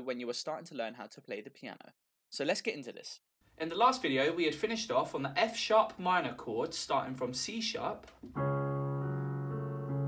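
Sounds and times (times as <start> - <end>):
digital piano notes ringing: 8.3 - 10.0.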